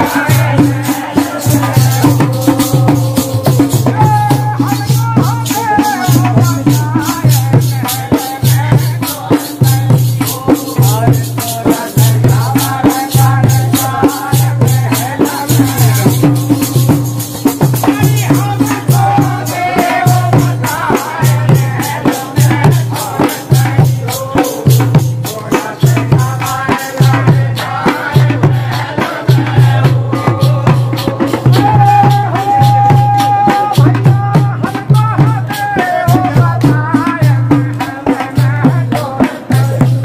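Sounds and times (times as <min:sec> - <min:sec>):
hand drum beating fast rhythm: 0:00.0 - 0:40.0
men singing together: 0:00.0 - 0:40.0.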